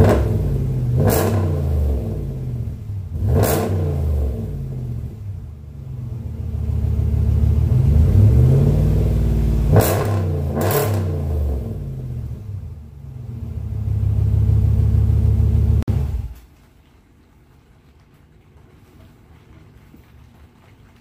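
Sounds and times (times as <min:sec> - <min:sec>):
car engine revving: 0:00.0 - 0:16.4.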